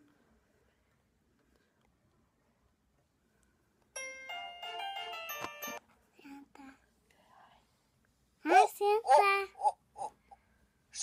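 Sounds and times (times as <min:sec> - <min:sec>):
phone chiming jingle: 0:04.0 - 0:05.8.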